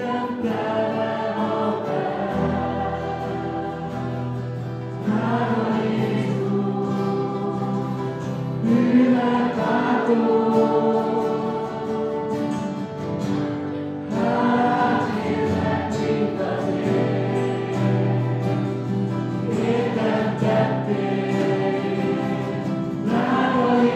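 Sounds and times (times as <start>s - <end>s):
group singing worship song: 0.0s - 23.9s
strummed acoustic guitars: 0.0s - 23.9s.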